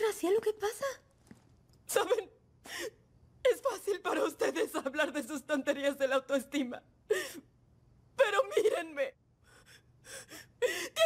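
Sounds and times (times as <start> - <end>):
woman gasping while crying: 9.6 - 11.0.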